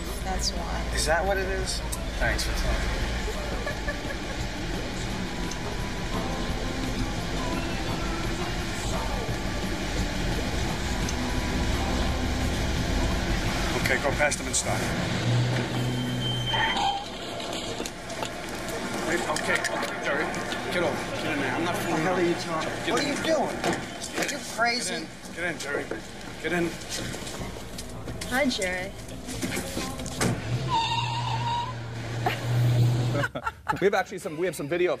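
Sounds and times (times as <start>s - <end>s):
car engine humming: 0.0s - 33.7s
traffic noise: 0.0s - 35.0s.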